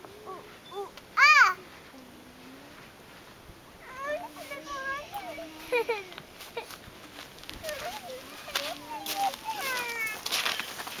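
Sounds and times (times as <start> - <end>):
child making wordless vocal sounds: 0.0 - 2.8, 3.8 - 6.2, 7.6 - 10.2.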